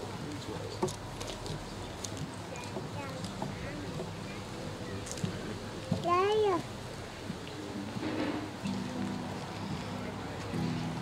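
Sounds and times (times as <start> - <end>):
acoustic guitars playing: 2.6 - 11.0.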